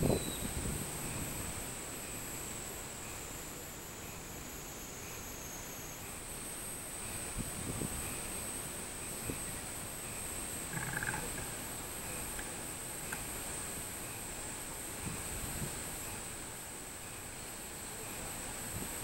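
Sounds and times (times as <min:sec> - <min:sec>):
low rumble: 0:00.0 - 0:01.8
cicadas buzzing: 0:00.0 - 0:19.0.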